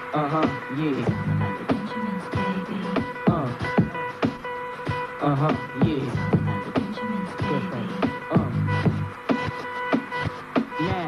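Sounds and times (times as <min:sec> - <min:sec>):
held electronic note: 0:00.0 - 0:11.0
steady beat of sharp hits: 0:00.3 - 0:11.0.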